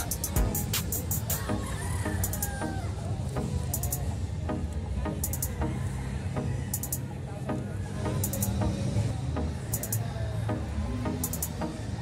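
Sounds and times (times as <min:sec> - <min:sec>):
background music with beat: 0:00.0 - 0:12.0
roosters crowing and clucking: 0:01.2 - 0:03.1.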